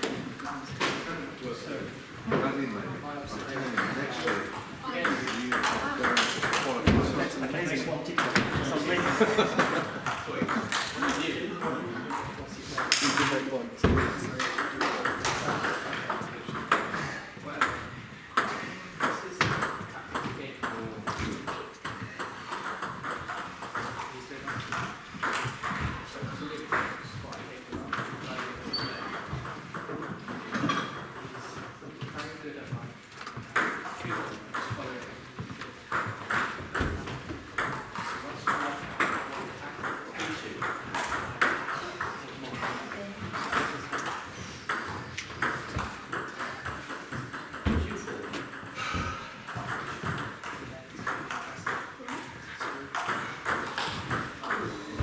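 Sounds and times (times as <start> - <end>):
table tennis balls clicking: 3.4 - 17.0, 17.6 - 32.4, 33.0 - 55.0.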